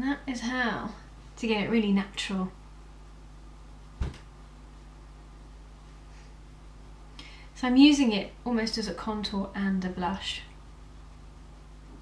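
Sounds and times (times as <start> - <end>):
steady low hum: 0.0 - 12.0
short thump: 4.0 - 4.3.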